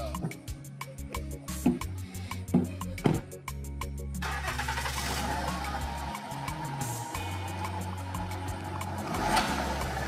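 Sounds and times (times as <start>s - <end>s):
background music: 0.0s - 10.0s
car engine starting and running: 4.2s - 10.0s.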